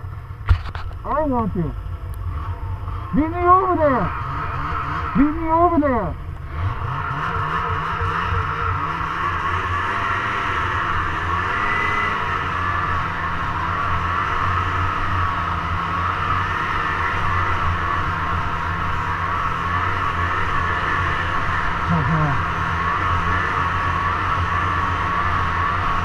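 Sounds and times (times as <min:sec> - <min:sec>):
snowmobile engine running: 0:00.0 - 0:26.0.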